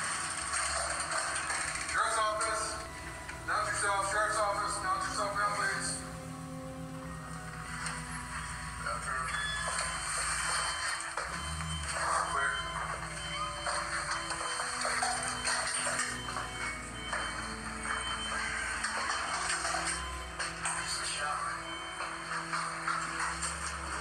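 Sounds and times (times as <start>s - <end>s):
background music with held tones: 0.0s - 24.0s
indistinct voices: 1.9s - 10.2s, 11.3s - 21.9s.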